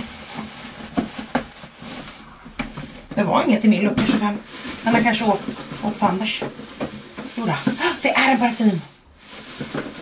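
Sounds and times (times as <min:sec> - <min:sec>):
hand rustling shredded paper: 0:00.0 - 0:00.9, 0:07.2 - 0:10.0.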